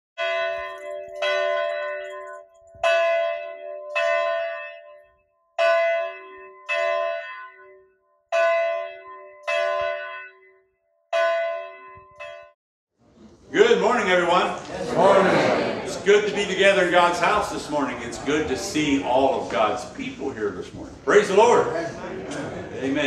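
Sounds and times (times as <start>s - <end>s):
church bell tolling: 0.2s - 12.6s.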